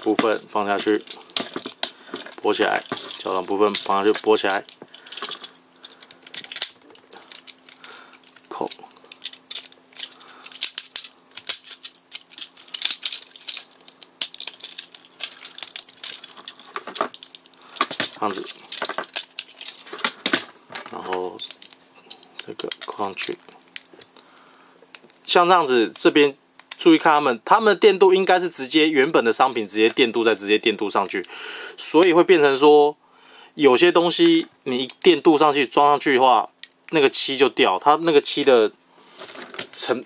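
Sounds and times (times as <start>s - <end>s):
plastic toy clicks and rattles: 0.0s - 24.1s, 25.9s - 27.0s.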